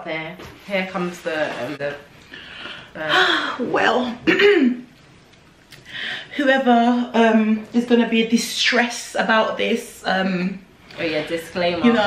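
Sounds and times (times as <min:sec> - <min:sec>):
woman clearing her throat: 0:04.2 - 0:04.8.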